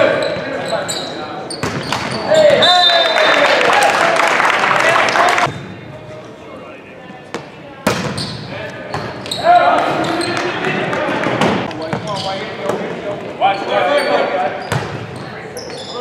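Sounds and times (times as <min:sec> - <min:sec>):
players and spectators calling out: 0:00.0 - 0:05.5
volleyball hits: 0:01.6 - 0:02.6, 0:07.3 - 0:12.1.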